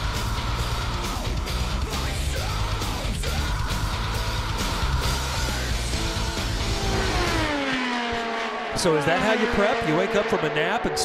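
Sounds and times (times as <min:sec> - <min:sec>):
music: 0:00.0 - 0:07.5.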